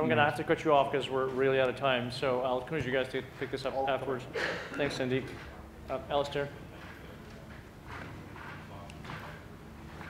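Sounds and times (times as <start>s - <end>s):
footsteps: 6.2s - 10.0s.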